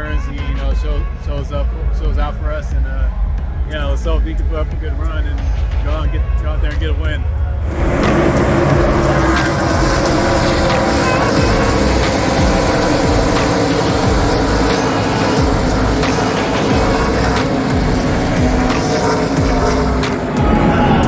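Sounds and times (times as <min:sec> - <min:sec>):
background music with beat: 0:00.0 - 0:21.0
race truck engines at speed: 0:07.3 - 0:21.0.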